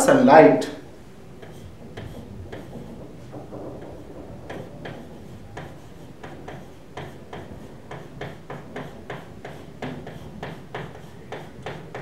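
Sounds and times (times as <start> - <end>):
pen tapping on touchscreen: 1.4 - 12.0.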